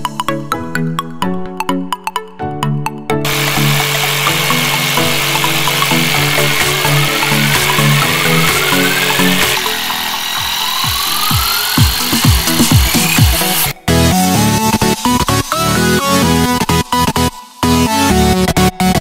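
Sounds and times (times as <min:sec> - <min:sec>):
jigsaw cutting plywood: 0:03.2 - 0:17.8
electronic music with steady beat: 0:03.2 - 0:19.0.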